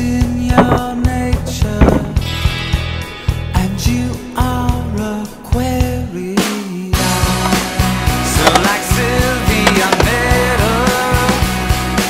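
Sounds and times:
rock music: 0.0s - 12.0s.

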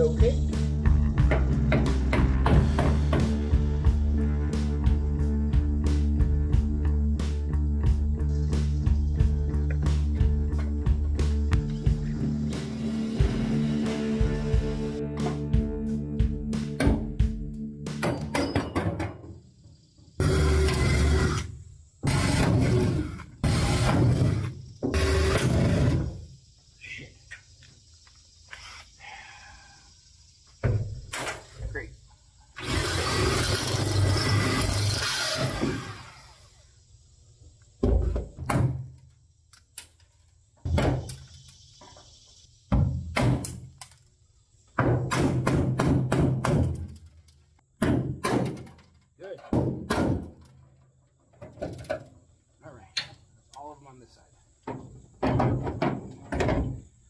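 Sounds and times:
cordless drill drilling rivets: 20.2s - 25.9s, 32.6s - 36.6s
sharp knocks: 44.8s - 46.8s, 47.8s - 48.8s, 49.5s - 50.4s.

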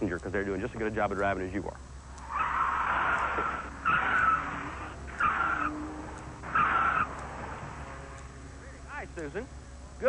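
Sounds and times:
car tyre squealing: 2.2s - 8.4s.

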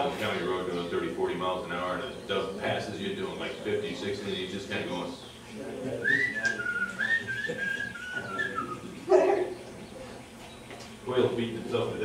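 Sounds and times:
man whistling a sliding note: 6.0s - 8.8s.

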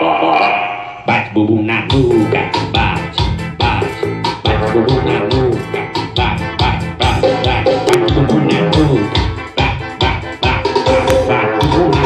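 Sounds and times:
loud car stereo music with bass: 1.0s - 12.0s.

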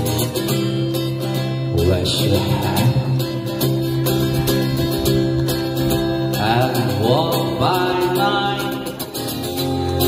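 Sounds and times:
acoustic guitar strumming: 0.0s - 10.0s
person singing: 6.3s - 9.2s.

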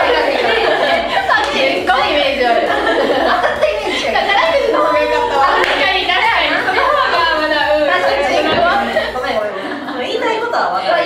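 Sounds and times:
women laughing: 0.0s - 10.2s
women chattering: 0.0s - 11.0s.

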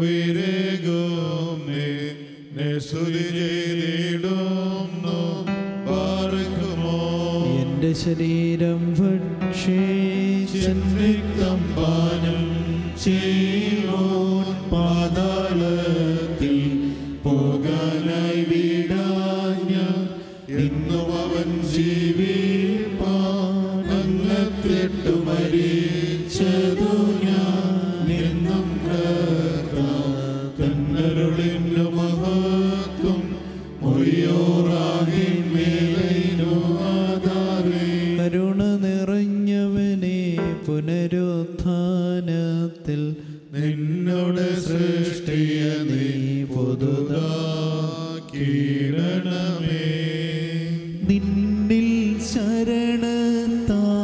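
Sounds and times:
men chanting prayer: 0.0s - 8.0s.

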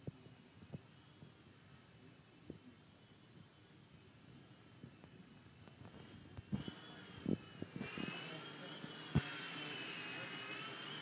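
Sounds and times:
toy helicopter motor whine: 5.9s - 11.0s.

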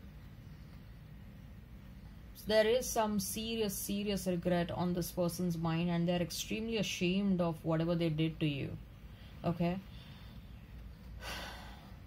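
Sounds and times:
low room hum: 0.0s - 12.0s
person breathing: 11.2s - 12.0s.

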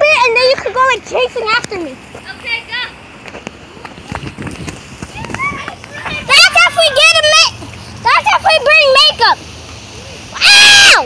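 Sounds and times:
running footsteps: 3.1s - 8.0s.

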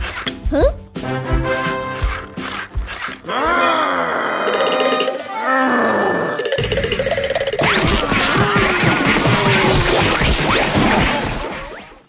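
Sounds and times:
background music: 0.0s - 7.7s
cartoon voice groaning: 3.3s - 4.7s, 5.3s - 6.5s.

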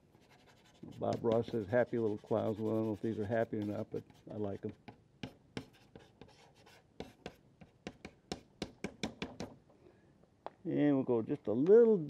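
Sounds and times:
pastel stick scratching on paper: 0.1s - 8.5s.

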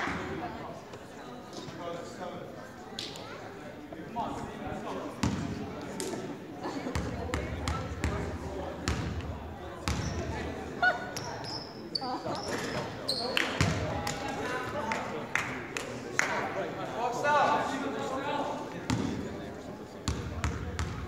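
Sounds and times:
sneaker squeaks: 9.9s - 13.7s.

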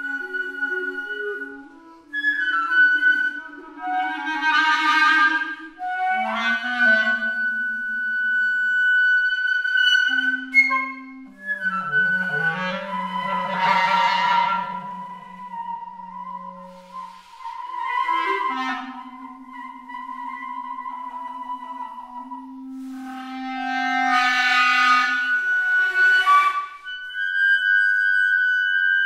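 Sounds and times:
clarinet sustaining low notes: 0.0s - 29.0s
flute playing held notes: 0.0s - 29.0s.

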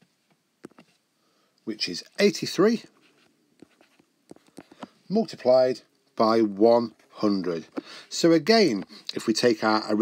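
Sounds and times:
stylus scratching on tablet: 2.9s - 5.6s.

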